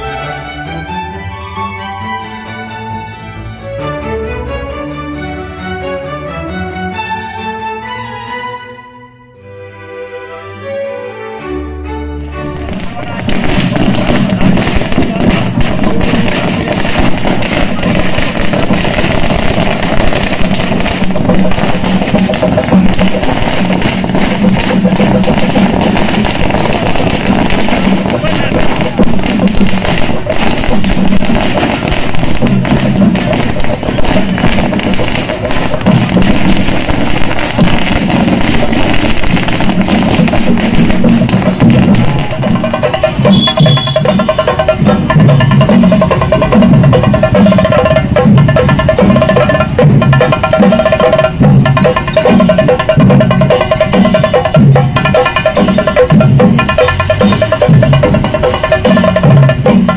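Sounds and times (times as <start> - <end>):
music: 0.0 - 59.9
crowd voices: 9.4 - 59.4
firecrackers bursting: 12.5 - 59.9.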